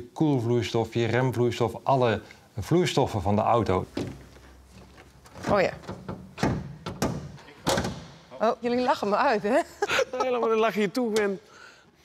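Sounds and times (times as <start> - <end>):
van bonnet knocks and clunks: 5.3 - 8.2.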